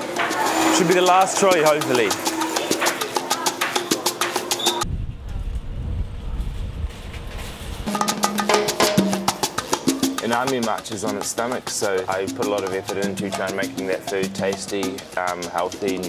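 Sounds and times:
upbeat salsa music: 0:00.0 - 0:04.8, 0:07.9 - 0:16.0
wind rumble on microphone: 0:04.8 - 0:07.9.

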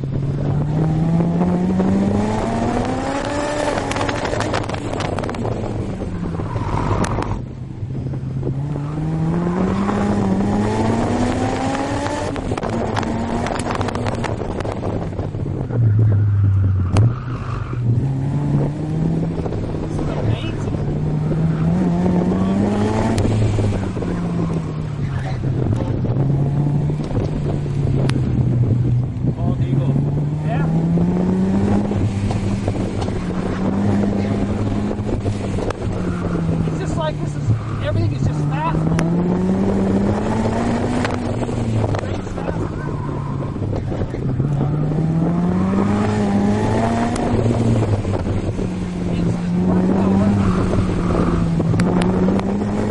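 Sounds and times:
car engine revving: 0:00.0 - 0:52.9
wind rushing: 0:00.0 - 0:52.9.

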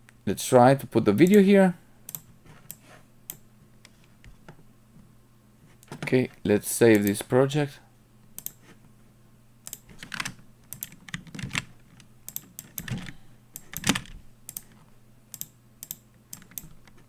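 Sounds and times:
faint low hum: 0:00.0 - 0:17.0
keyboard and mouse clicking: 0:08.4 - 0:08.6, 0:09.7 - 0:17.0.

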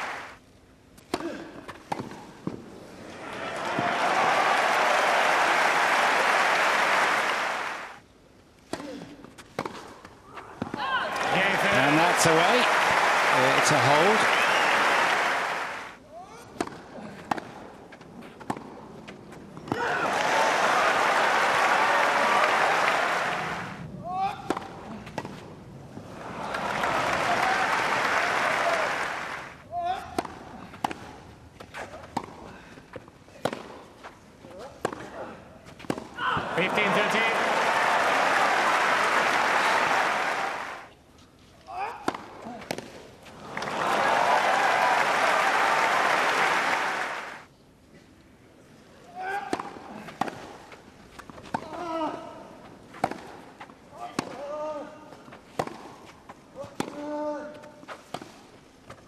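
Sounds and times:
crowd applauding and cheering: 0:00.0 - 0:00.4, 0:03.2 - 0:08.0, 0:11.0 - 0:16.0, 0:20.0 - 0:23.8, 0:26.2 - 0:29.6, 0:36.5 - 0:40.9, 0:43.5 - 0:47.5
shouts from crowd: 0:03.2 - 0:07.3, 0:43.8 - 0:47.2
tennis ball struck by racquet: 0:33.4 - 0:33.8, 0:35.8 - 0:36.2, 0:52.9 - 0:53.4, 0:55.5 - 0:56.0.

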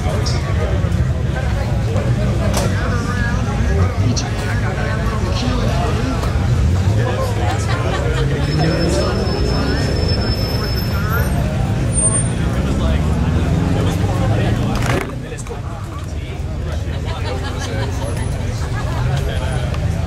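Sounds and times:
crowd chatter: 0:00.0 - 0:20.0
low rumble of vehicle engines: 0:00.0 - 0:20.0
engine revving: 0:11.7 - 0:15.3.

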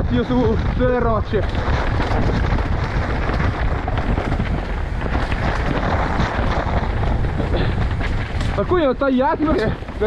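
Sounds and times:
bike rattles and clicks: 0:00.0 - 0:10.0
tyres rolling over dirt: 0:00.0 - 0:10.0
wind rushing on microphone: 0:00.0 - 0:10.0.

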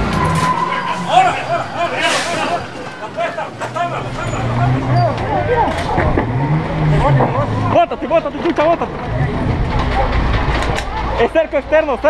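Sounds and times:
whistle-like tone: 0:00.0 - 0:05.2
men shouting short calls: 0:00.1 - 0:05.8.

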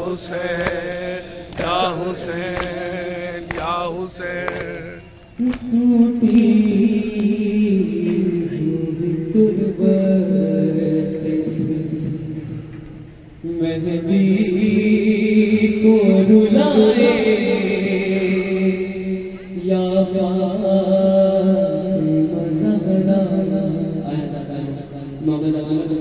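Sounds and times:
man chanting a lament: 0:00.0 - 0:12.7, 0:13.4 - 0:26.0.

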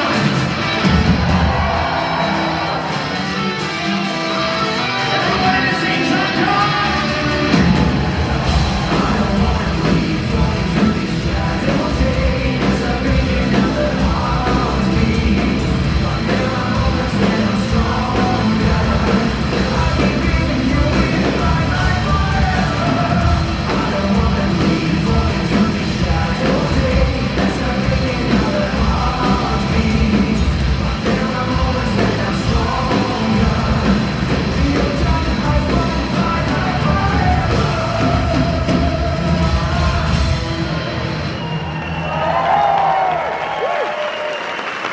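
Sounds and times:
metal band playing live: 0:00.0 - 0:43.0.

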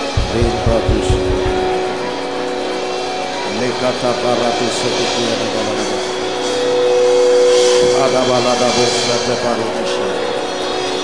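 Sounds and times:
keyboard chord: 0:00.0 - 0:04.9.

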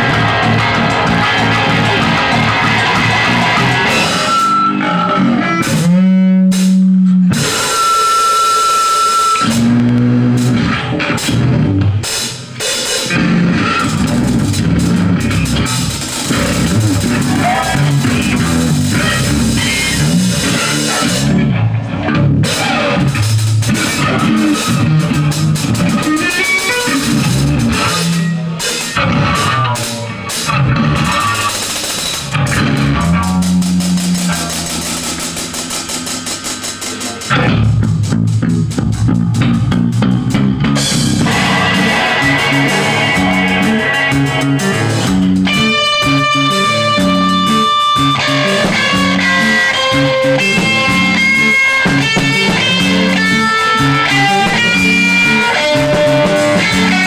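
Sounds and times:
bass guitar: 0:00.0 - 0:57.0
distorted electric guitars: 0:00.0 - 0:57.0
drum kit: 0:00.0 - 0:57.0
steady high tone: 0:41.1 - 0:51.8.

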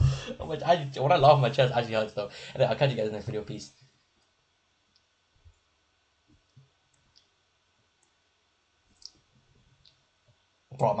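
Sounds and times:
man speaking loudly: 0:00.0 - 0:03.7.

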